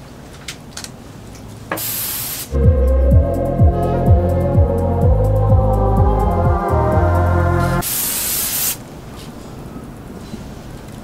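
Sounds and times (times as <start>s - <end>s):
aerosol spray burst: 1.8s - 2.6s, 7.8s - 8.8s.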